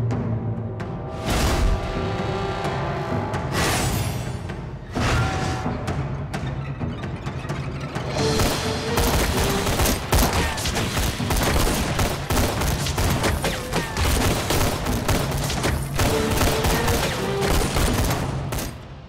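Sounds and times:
rapid overlapping gunshots: 0:08.2 - 0:18.8.

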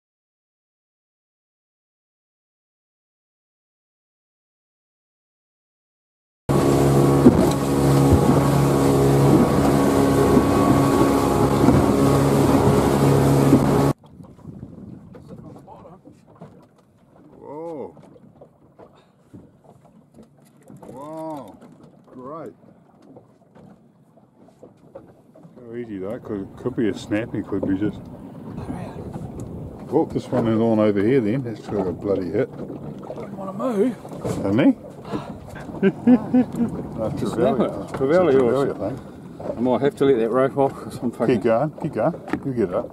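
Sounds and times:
motorboat engine droning: 0:06.5 - 0:42.9.

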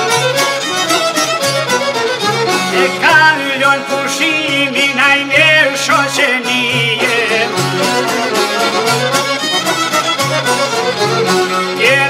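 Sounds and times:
high ornamented melody: 0:00.0 - 0:12.0
plucked lutes: 0:00.0 - 0:12.0
frame drum beat: 0:02.3 - 0:10.6.

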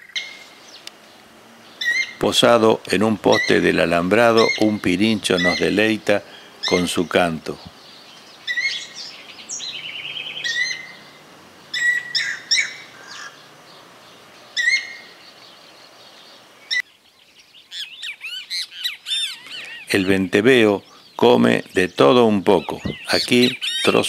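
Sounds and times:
bird rising-and-falling calls: 0:01.6 - 0:02.5, 0:03.2 - 0:24.0
bird high whistled calls: 0:01.7 - 0:02.2, 0:03.3 - 0:03.6, 0:04.3 - 0:13.5, 0:14.6 - 0:21.2, 0:21.8 - 0:24.0.

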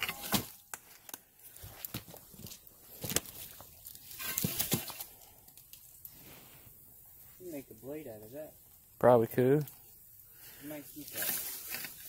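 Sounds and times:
rake rustling through weeds: 0:10.9 - 0:12.0.

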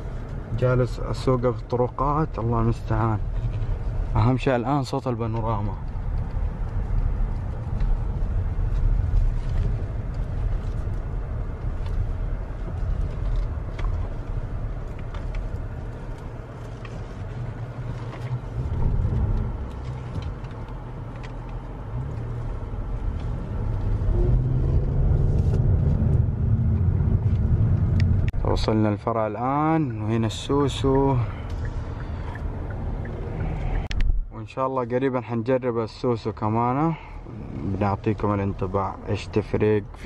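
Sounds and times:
car cabin rumble: 0:00.0 - 0:40.0.

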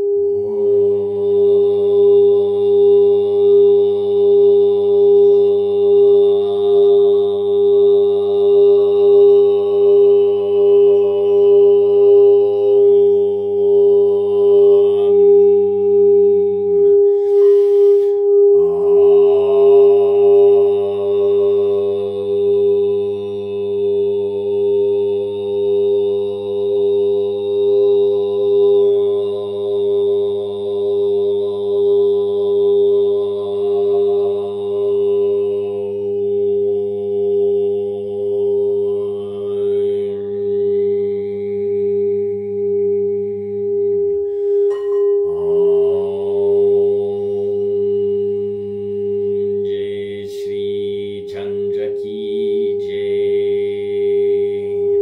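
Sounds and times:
steady drone: 0:00.0 - 0:55.0
man chanting on a held note: 0:45.4 - 0:55.0.

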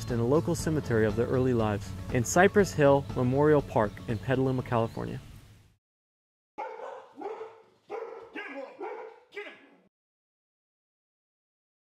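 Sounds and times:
dog barking: 0:06.6 - 0:09.9.

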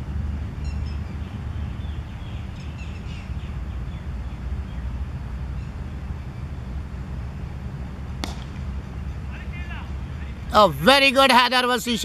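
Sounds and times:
low background rumble: 0:00.0 - 0:12.0
cricket bat striking ball: 0:08.2 - 0:08.7.

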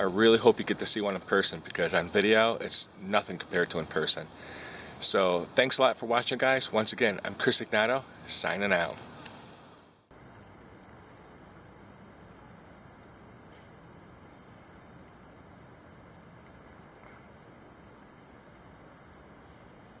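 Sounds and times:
cricket trilling: 0:10.0 - 0:20.0.

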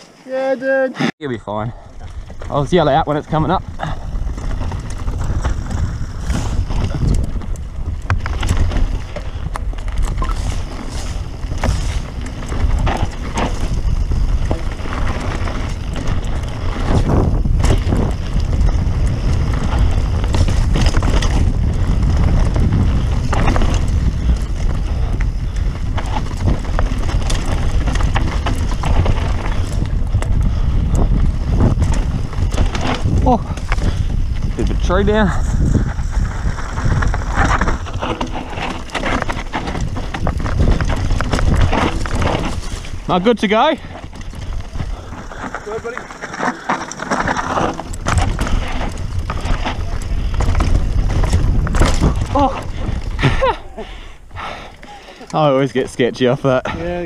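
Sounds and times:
wind buffeting microphone: 0:01.2 - 0:57.0
tyres crunching over stones: 0:01.5 - 0:53.8
bike knocking and rattling: 0:01.5 - 0:57.0.

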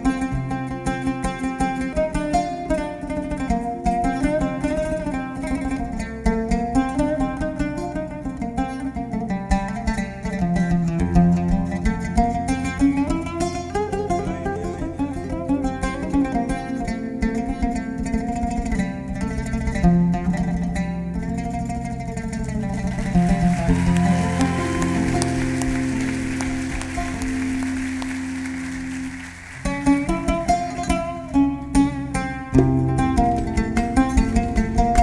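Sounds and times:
oud plucked notes: 0:00.0 - 0:35.0.

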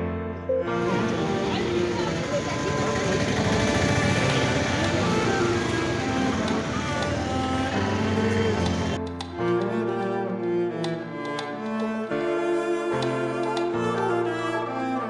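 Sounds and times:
many voices talking: 0:00.7 - 0:07.8
road traffic passing: 0:00.7 - 0:09.2.

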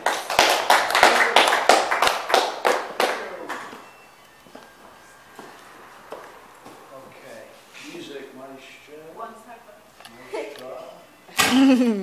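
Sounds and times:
audience applause: 0:00.0 - 0:03.7.

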